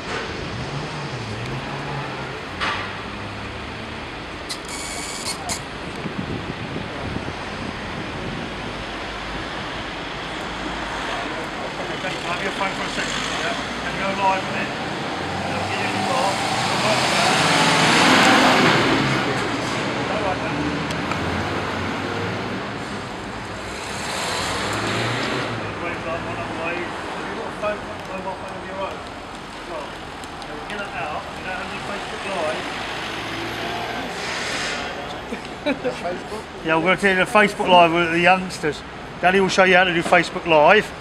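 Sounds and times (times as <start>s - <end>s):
street traffic: 0.0s - 41.0s
vehicle passing by: 10.6s - 36.6s
voices talking: 11.0s - 21.3s, 25.6s - 34.2s, 34.9s - 41.0s.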